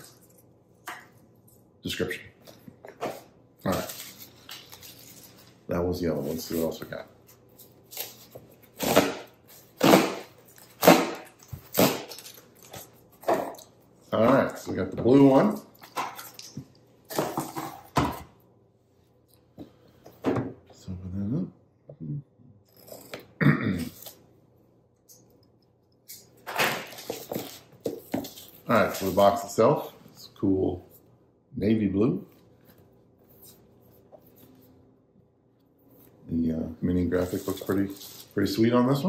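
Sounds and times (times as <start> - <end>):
burp or grunt: 23.4 - 24.0.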